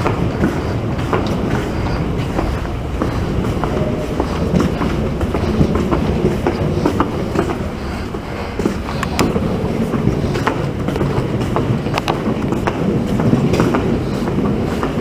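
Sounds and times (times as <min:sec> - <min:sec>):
footsteps on hard floor: 0:00.0 - 0:15.0
steady low rumble: 0:00.0 - 0:15.0.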